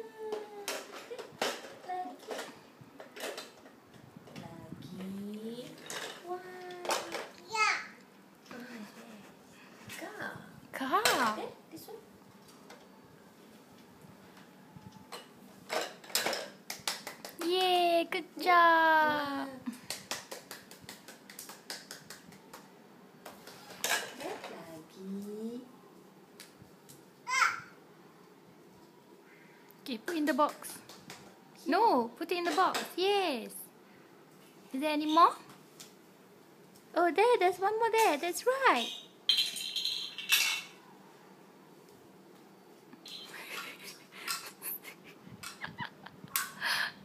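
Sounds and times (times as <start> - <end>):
clinking clatter of small objects: 38.8 - 40.8.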